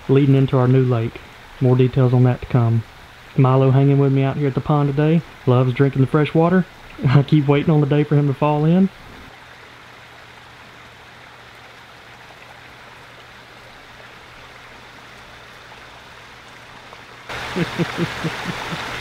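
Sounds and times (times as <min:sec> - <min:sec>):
running water rushing: 0:00.0 - 0:19.0
person laughing: 0:17.4 - 0:19.0.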